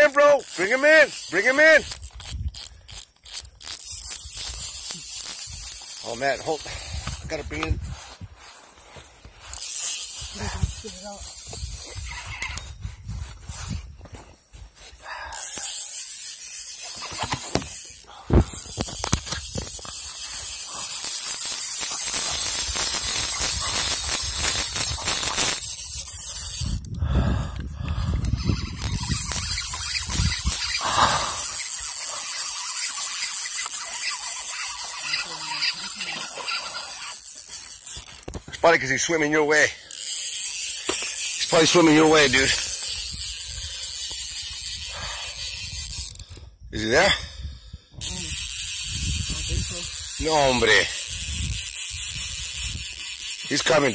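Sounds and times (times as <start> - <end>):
microphone rubbing on clothing: 4.0 - 15.0, 28.0 - 32.0.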